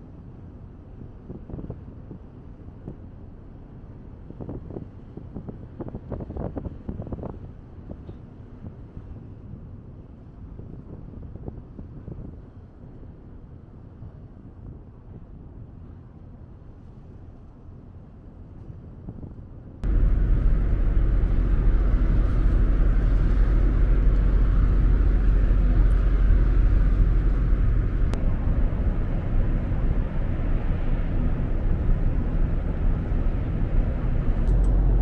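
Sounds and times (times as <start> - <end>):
ship engines rumbling: 19.8 - 35.0.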